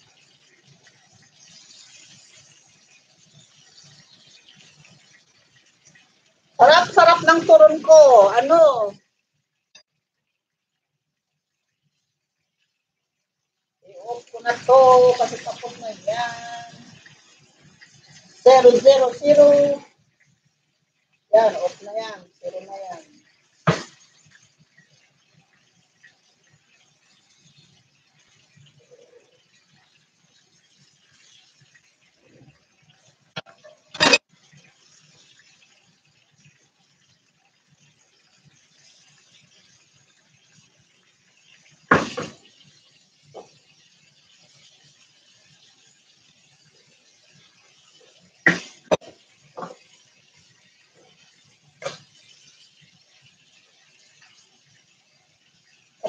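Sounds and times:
faint steady hiss: 0.0 - 56.0
kitchen items clattering: 33.4 - 34.2.

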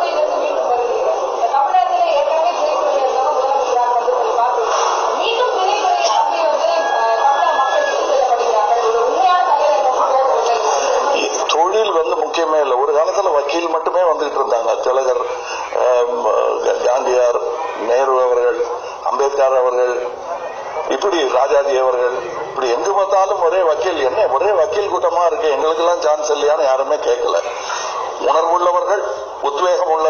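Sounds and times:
man talking into a microphone: 11.2 - 30.0.

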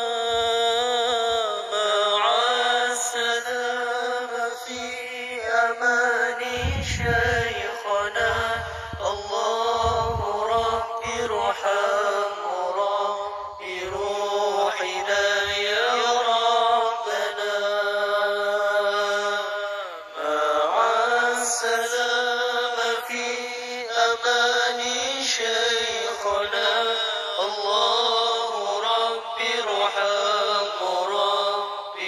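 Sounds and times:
person singing devotional chant: 0.0 - 32.0.

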